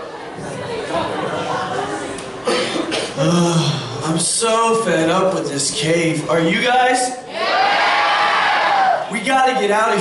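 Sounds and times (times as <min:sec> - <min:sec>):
audience murmuring: 0:00.0 - 0:10.0
person coughing: 0:02.4 - 0:03.8.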